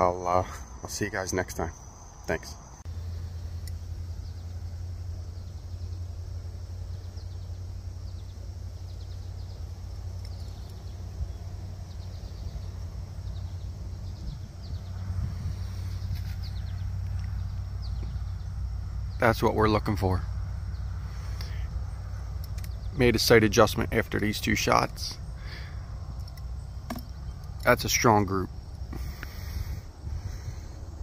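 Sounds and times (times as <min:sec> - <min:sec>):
low outdoor rumble: 0:00.0 - 0:31.0.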